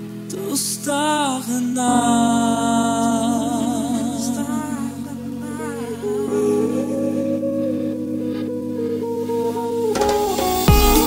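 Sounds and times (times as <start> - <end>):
wavering vocal line: 0.0 - 11.0
deep house music: 6.5 - 11.0.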